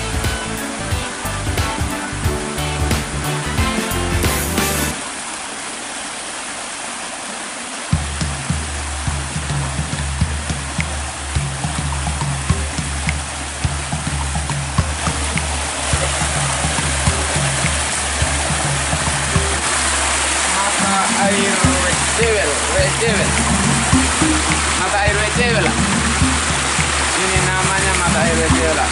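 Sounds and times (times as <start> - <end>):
background music with bass: 0.0 - 5.1, 7.9 - 28.9
spring water splashing from rock: 4.9 - 28.9.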